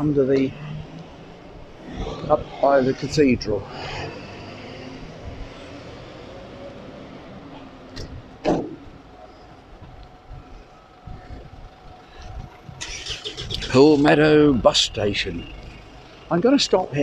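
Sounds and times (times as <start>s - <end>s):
road traffic passing: 0.0s - 17.0s.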